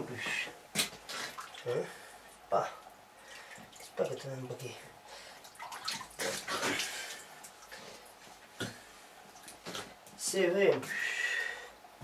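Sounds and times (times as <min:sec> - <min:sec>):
brine sloshing and dripping: 0:00.8 - 0:10.2.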